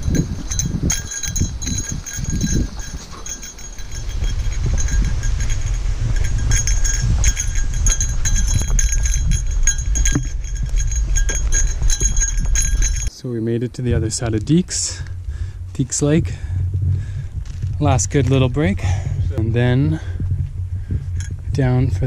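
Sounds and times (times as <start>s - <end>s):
small bell jingling: 0.0s - 13.1s, 21.1s - 22.0s
wind rumble on microphone: 0.0s - 13.1s, 13.7s - 22.0s.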